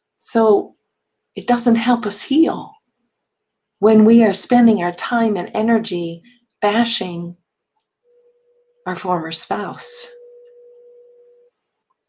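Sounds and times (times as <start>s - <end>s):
woman speaking: 0.2s - 0.8s, 1.4s - 2.8s, 3.8s - 7.4s, 8.9s - 10.2s
faint steady tone: 7.4s - 12.0s.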